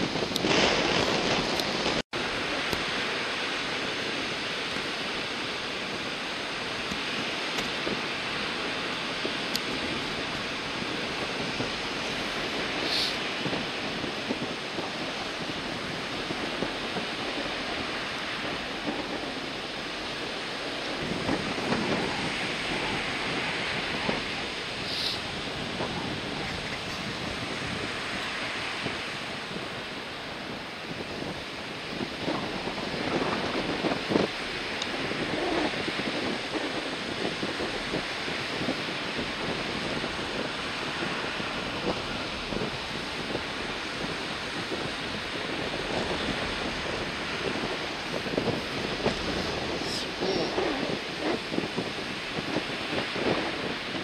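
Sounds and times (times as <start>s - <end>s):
waves breaking on beach: 0.0s - 54.0s
wind blowing: 0.0s - 54.0s.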